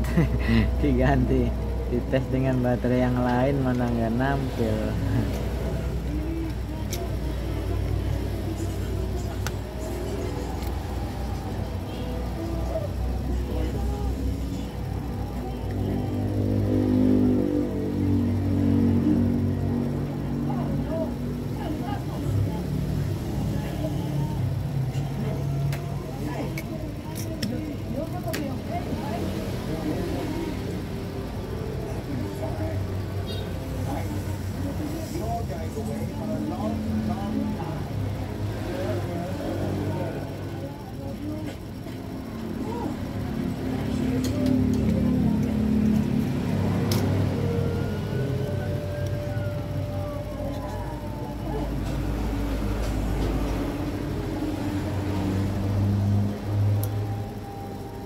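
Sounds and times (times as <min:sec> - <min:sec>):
music: 0:00.0 - 0:40.8, 0:41.5 - 0:58.0
engine-like rumble: 0:00.0 - 0:58.0
indistinct voices: 0:00.0 - 0:58.0.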